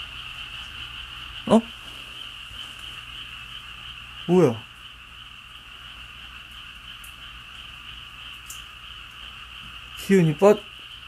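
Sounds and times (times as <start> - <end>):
frogs and insects calling: 0.0 - 11.0.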